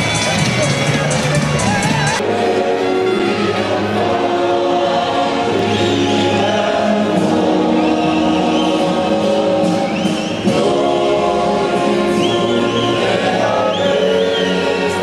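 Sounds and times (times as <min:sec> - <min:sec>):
music: 0:00.0 - 0:15.0
crowd singing an anthem: 0:01.6 - 0:15.0.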